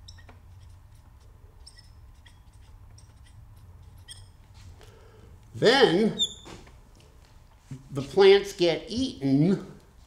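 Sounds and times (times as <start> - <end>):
marker squeaking on glass: 0.0 - 4.4, 6.1 - 6.6.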